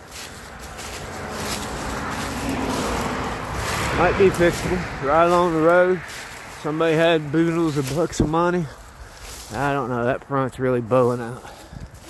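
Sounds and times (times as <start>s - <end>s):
vehicle driving by: 0.0s - 9.7s.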